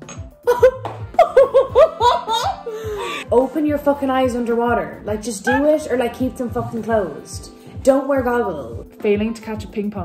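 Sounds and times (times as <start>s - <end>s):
quiet background music: 0.0s - 10.0s
women laughing: 0.5s - 3.2s.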